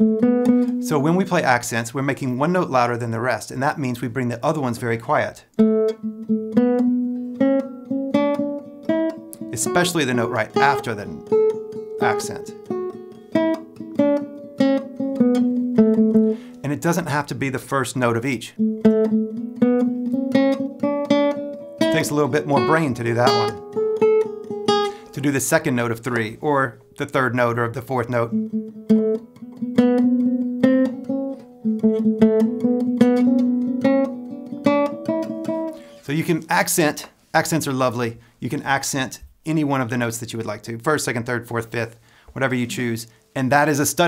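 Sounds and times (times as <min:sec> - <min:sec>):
classical guitar tremolo: 0:00.0 - 0:01.8, 0:05.6 - 0:26.9, 0:27.7 - 0:36.5
man speaking: 0:00.8 - 0:05.5, 0:09.5 - 0:11.2, 0:12.0 - 0:12.6, 0:16.6 - 0:18.6, 0:21.9 - 0:23.6, 0:25.0 - 0:28.4, 0:36.0 - 0:44.0.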